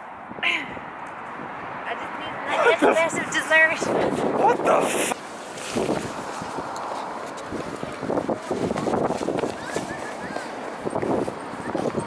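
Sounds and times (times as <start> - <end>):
wind rushing over microphone: 0.0 - 12.0
man's wordless voice: 4.4 - 5.2.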